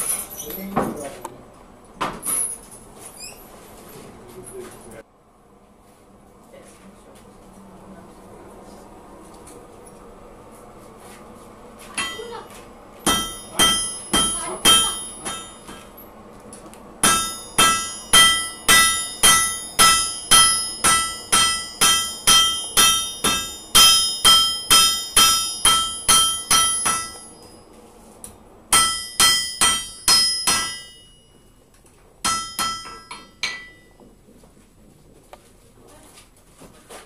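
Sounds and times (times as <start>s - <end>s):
hammer striking iron on anvil: 12.0s - 12.4s, 13.0s - 16.0s, 17.0s - 27.5s, 28.7s - 31.4s, 32.2s - 34.0s.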